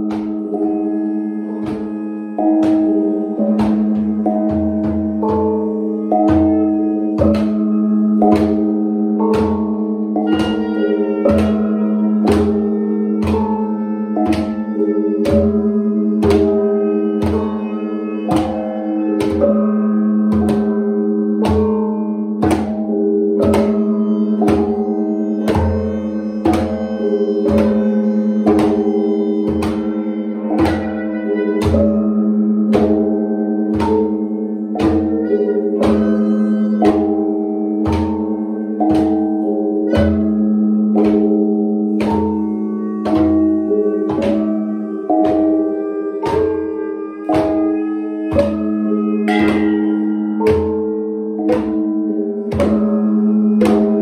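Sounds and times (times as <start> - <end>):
gongs struck with mallets: 0.0 - 54.0
hand drum thumps: 1.4 - 54.0.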